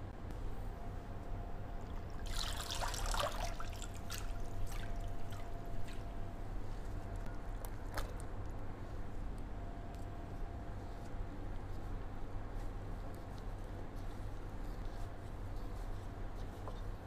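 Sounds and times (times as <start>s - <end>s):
water pouring: 2.0s - 5.4s
water dripping and splashing: 2.0s - 6.0s.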